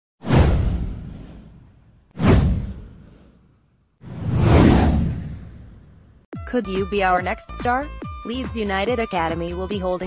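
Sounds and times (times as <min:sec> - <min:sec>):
swoosh with deep rumble: 0:00.2 - 0:06.3.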